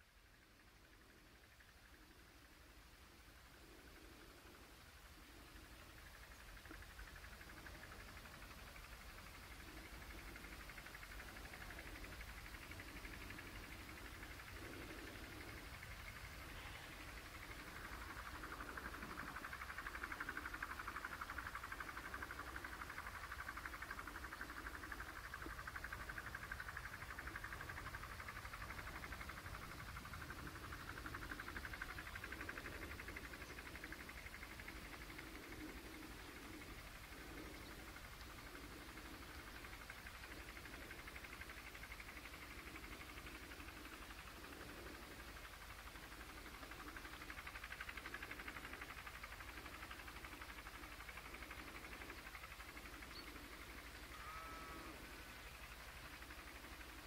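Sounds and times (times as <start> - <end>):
soft irregular low sounds: 0.0 - 57.0
steady hiss: 0.0 - 57.0.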